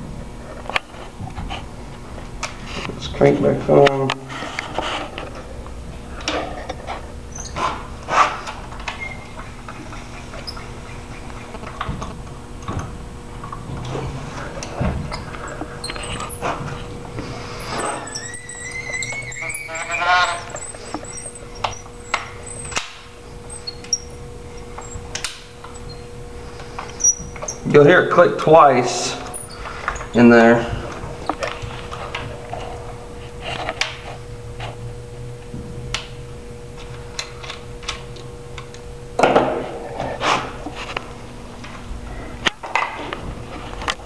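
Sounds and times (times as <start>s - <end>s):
squeaky rising whine: 7.1s - 8.0s, 8.6s - 12.5s, 13.4s - 34.9s
crank mechanism clicking: 17.7s - 26.0s.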